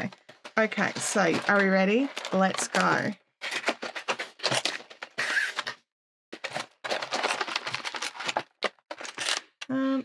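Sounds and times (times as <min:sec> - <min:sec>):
tape and cardboard tearing: 0:03.4 - 0:05.8.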